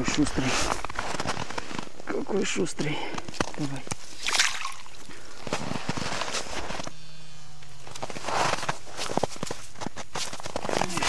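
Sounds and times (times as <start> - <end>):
low steady hum: 0.0 - 11.0
water sloshing and splashing: 4.0 - 5.1.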